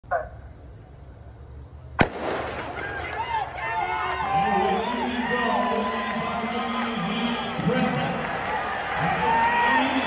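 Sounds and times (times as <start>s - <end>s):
starter's gun shot: 2.0s - 2.8s
crowd cheering with whoops: 2.6s - 10.0s.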